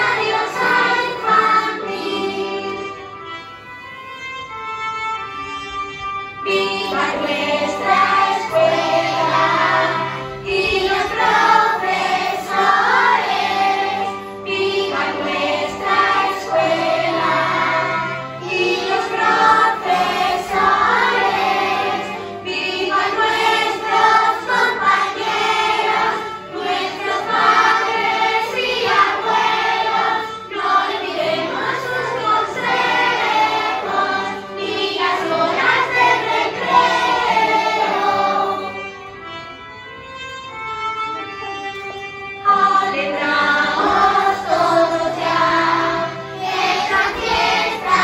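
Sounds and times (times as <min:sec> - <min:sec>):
group of voices singing: 0:00.0 - 0:02.9, 0:06.5 - 0:38.8, 0:42.4 - 0:48.0
instrumental backing: 0:00.0 - 0:48.0.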